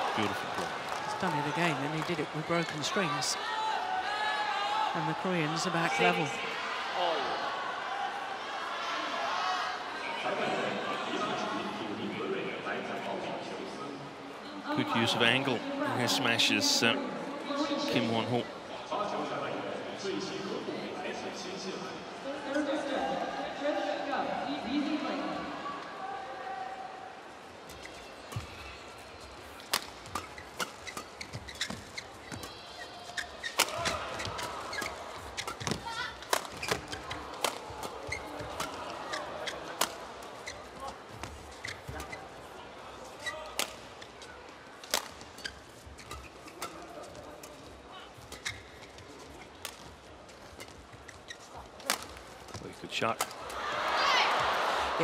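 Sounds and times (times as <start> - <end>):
crowd cheering: 0.0 - 11.2, 53.3 - 55.0
arena crowd noise: 0.0 - 55.0
rackets striking shuttlecock: 29.7 - 31.2, 33.5 - 38.8, 44.9 - 45.3, 51.8 - 52.6.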